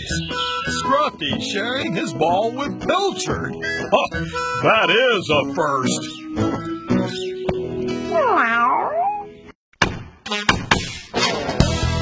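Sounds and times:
light background music: 0.0s - 8.0s
cartoon cat meowing: 8.1s - 9.3s.

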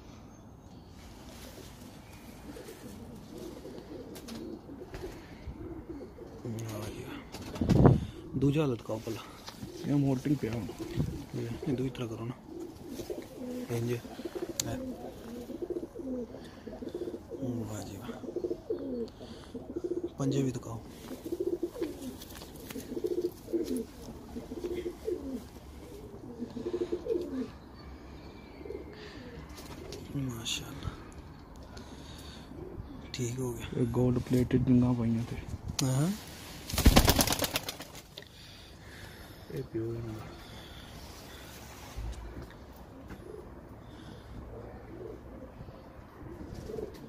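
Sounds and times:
pigeons cooing: 1.3s - 33.4s, 36.8s - 47.0s
pigeon flapping wings: 36.6s - 38.2s.

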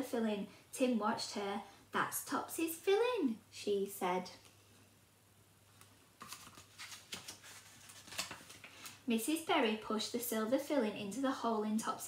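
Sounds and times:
papery rustles: 6.2s - 9.0s.

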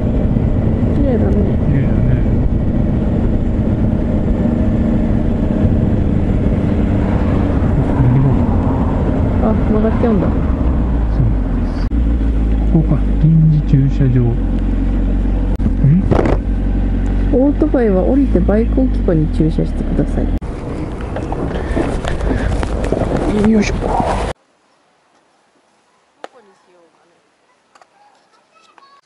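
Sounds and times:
motorcycle engine running: 0.0s - 23.6s
road and wind noise: 0.0s - 28.8s
people talking: 0.9s - 2.4s, 7.8s - 8.4s, 9.4s - 10.4s, 11.1s - 11.9s, 12.7s - 14.4s, 15.6s - 16.2s, 17.3s - 20.4s, 23.3s - 23.9s, 26.2s - 27.3s.

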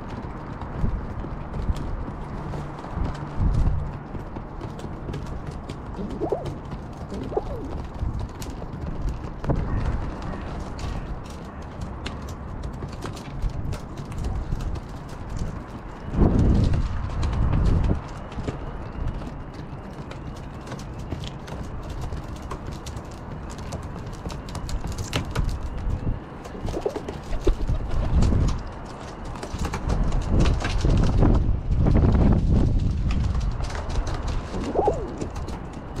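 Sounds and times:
wind buffeting microphone: 0.0s - 20.0s, 21.6s - 36.0s
pigeon beaks clicking on tray: 5.9s - 7.9s, 26.5s - 28.2s
pigeon cooing: 5.9s - 7.9s, 26.5s - 28.0s, 34.5s - 35.6s.

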